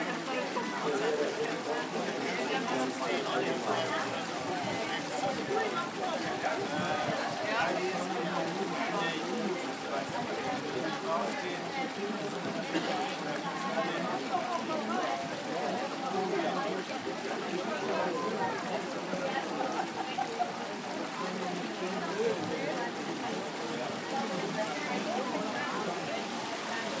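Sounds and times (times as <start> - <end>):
crowd chatter: 0.0 - 27.0.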